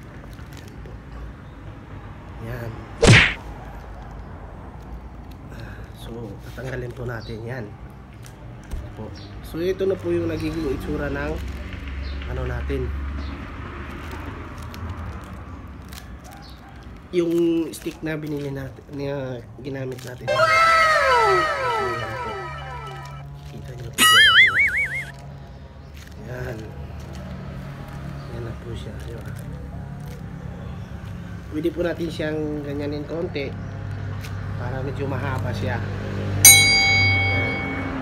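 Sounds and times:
cartoon falling whistle tones: 0:20.3 - 0:23.2, 0:24.0 - 0:25.1
cartoon wobbling boing: 0:20.3 - 0:23.2, 0:24.0 - 0:25.1
bright bell-like ding: 0:36.5 - 0:38.0.

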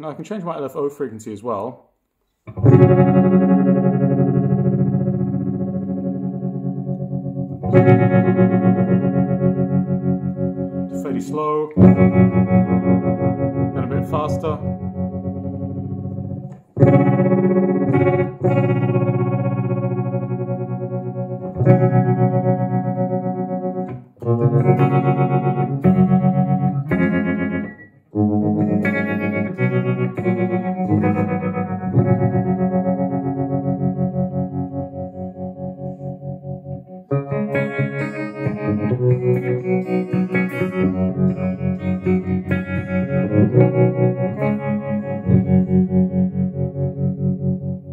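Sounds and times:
electric guitar chords with tremolo: 0:02.5 - 0:47.9.

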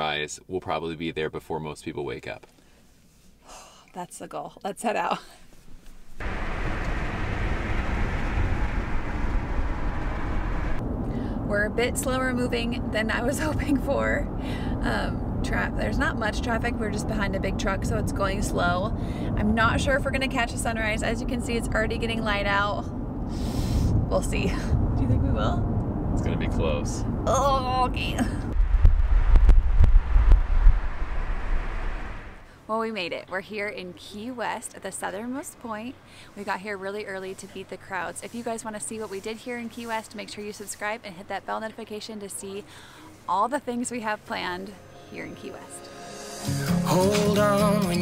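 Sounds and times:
road and engine noise in car: 0:05.4 - 0:28.8, 0:29.4 - 0:44.6
wind buffeting microphone: 0:06.2 - 0:32.4.

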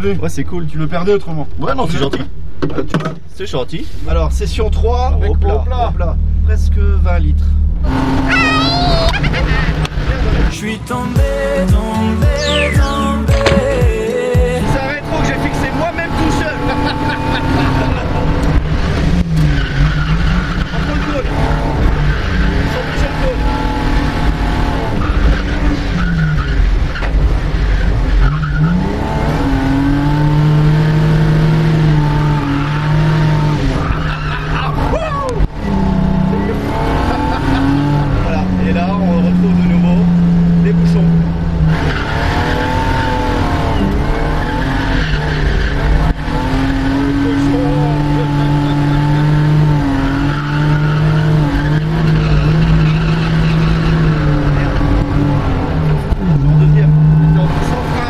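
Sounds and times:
tyres skidding: 0:02.0 - 0:58.0
car engine revving: 0:03.6 - 0:58.0.

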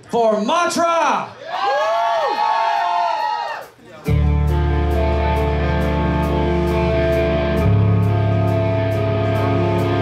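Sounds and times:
distorted electric guitars and bass: 0:04.0 - 0:10.0.

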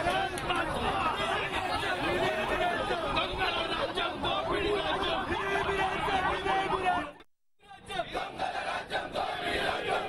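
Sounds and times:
crowd of men talking: 0:00.0 - 0:10.0.

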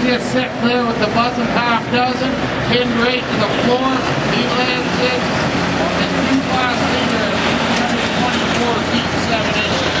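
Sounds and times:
diesel engines running: 0:00.0 - 0:10.0
people talking: 0:00.0 - 0:10.0.

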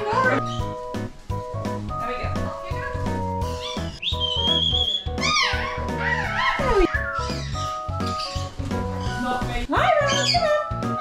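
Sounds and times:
background music with steady beat: 0:00.0 - 0:11.0
person whistling: 0:04.0 - 0:05.1.

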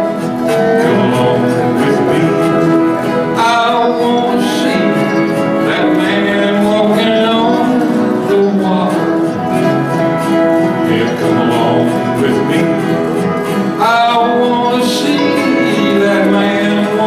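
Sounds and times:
acoustic guitars playing: 0:00.0 - 0:17.0.

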